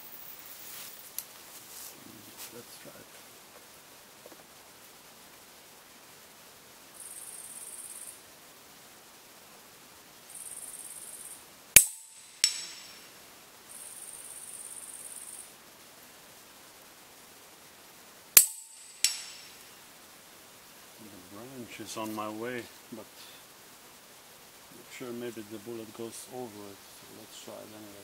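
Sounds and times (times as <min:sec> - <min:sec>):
faint high hiss: 0:00.0 - 0:28.0
slug clanging on steel target: 0:11.8 - 0:13.0, 0:18.4 - 0:19.6.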